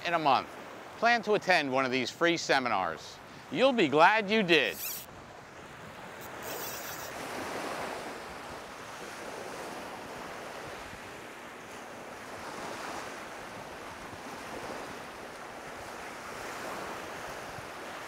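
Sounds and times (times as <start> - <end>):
wind: 0.0 - 18.0
small waves washing on beach: 3.1 - 18.0.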